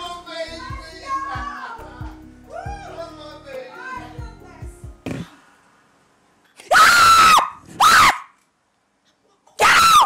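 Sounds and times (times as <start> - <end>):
woman screaming: 2.5 - 3.0, 6.7 - 8.3, 9.6 - 10.0.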